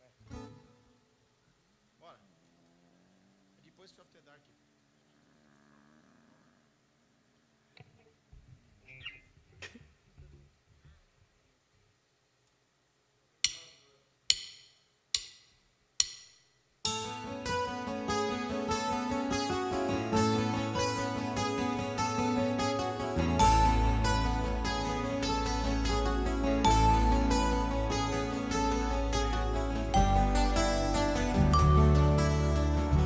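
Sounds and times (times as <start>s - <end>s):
drumsticks clicking together: 13.4s - 16.4s
electric guitar chord strummed: 16.9s - 33.0s
rock band playing: 16.9s - 33.0s.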